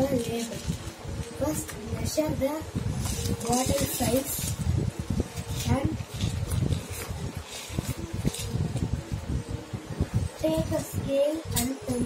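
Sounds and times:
paper rustling: 0:02.9 - 0:04.7, 0:05.3 - 0:08.8.

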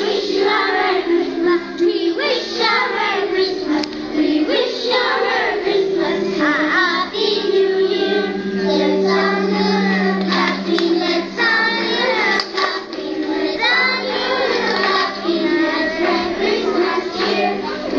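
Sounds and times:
children singing into microphones: 0:00.0 - 0:17.9.

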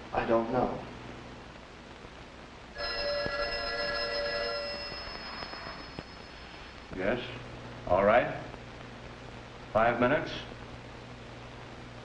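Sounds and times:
telephone bell ringing: 0:02.8 - 0:06.8.

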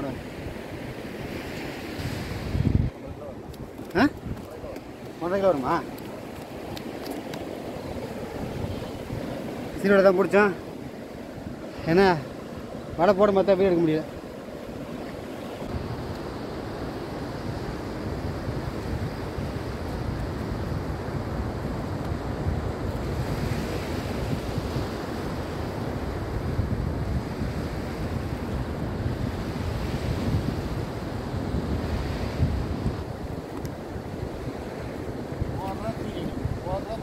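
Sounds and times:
waves breaking on beach: 0:00.0 - 0:37.0
wind rumbling on microphone: 0:00.0 - 0:37.0.

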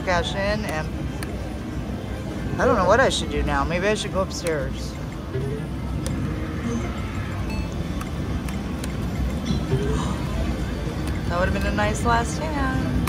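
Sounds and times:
background music: 0:00.0 - 0:13.0
gaming machine electronic tones: 0:05.0 - 0:10.7.

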